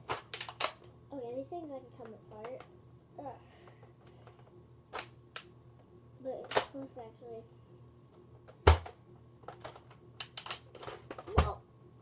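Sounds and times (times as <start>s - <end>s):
plastic toy blaster clicks: 10.2s - 10.6s.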